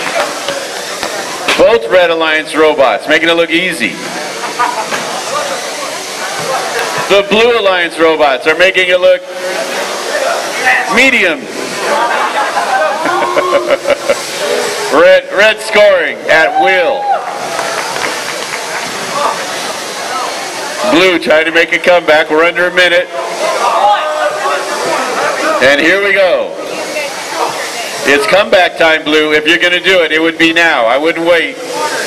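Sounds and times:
whirring ball launcher motors: 0:00.0 - 0:01.9
murmur of crowd voices: 0:00.0 - 0:32.0
steady background hiss: 0:00.0 - 0:32.0.

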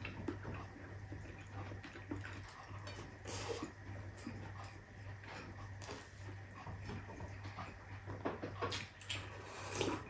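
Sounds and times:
man chewing with wet mouth noises: 0:00.0 - 0:10.0.

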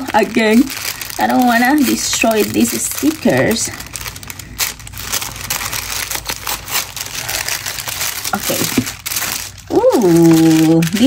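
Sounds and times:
packaging crinkling: 0:00.0 - 0:11.0.

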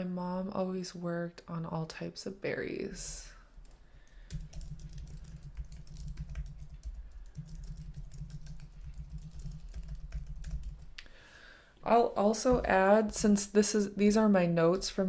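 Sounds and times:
typing on computer keyboard: 0:03.6 - 0:11.0.

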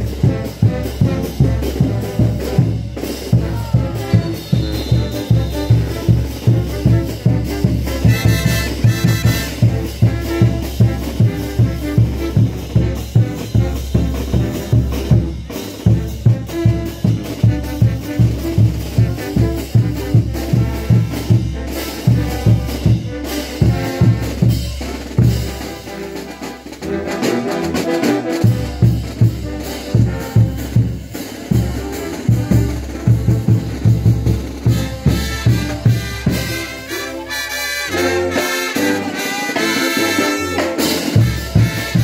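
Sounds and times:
drum beat: 0:00.0 - 0:26.9, 0:28.2 - 0:37.0, 0:38.2 - 0:42.0
brass band playing: 0:00.0 - 0:42.0.

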